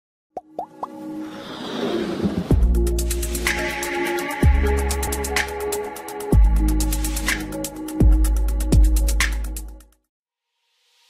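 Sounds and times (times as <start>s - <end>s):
building music: 0.6s - 9.2s.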